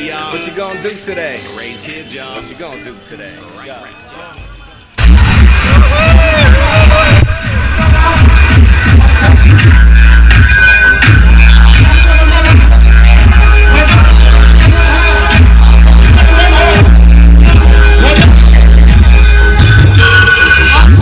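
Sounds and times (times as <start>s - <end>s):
loud electronic dance music: 4.4s - 21.0s.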